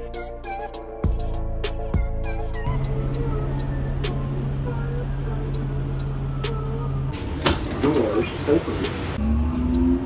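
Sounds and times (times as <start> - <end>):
bus engine humming: 2.6 - 10.0.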